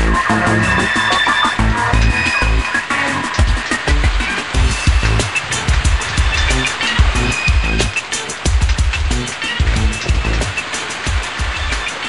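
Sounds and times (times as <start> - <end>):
electronic music with heavy beat: 0.0 - 12.0.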